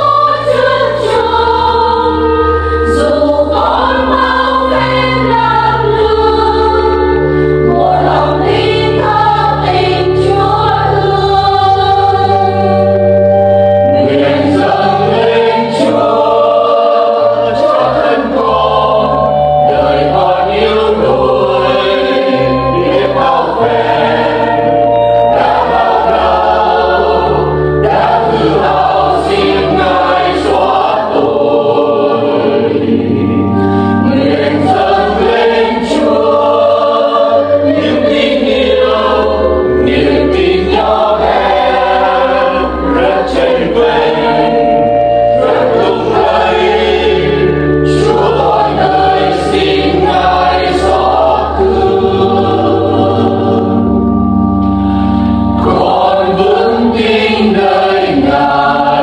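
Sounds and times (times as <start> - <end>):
choir singing a hymn in harmony: 0.0 - 59.0
low bass instrumental accompaniment: 0.0 - 59.0.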